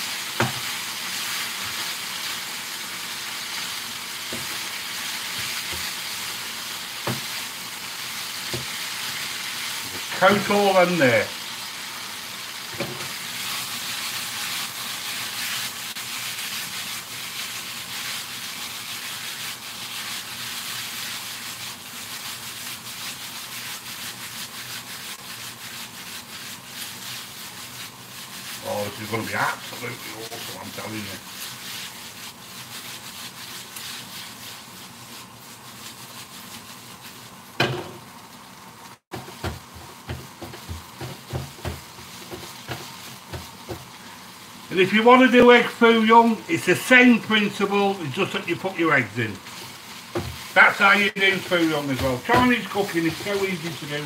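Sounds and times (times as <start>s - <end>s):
noodles sizzling in a wok: 0.0s - 54.0s
wok knocking on burner grate: 0.4s - 0.6s, 37.6s - 38.0s, 39.1s - 43.9s, 50.1s - 50.4s
spatula scraping and tapping pan: 0.4s - 0.7s, 4.3s - 4.7s, 5.3s - 6.0s, 7.0s - 7.4s, 8.4s - 8.8s, 12.7s - 13.7s, 39.1s - 44.0s, 49.4s - 50.6s, 51.2s - 53.8s.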